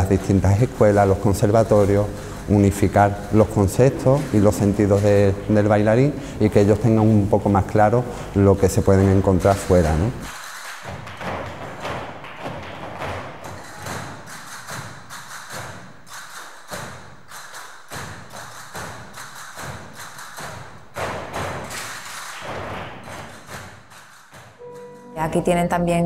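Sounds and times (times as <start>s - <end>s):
footwork thuds on floor: 10.8s - 15.0s.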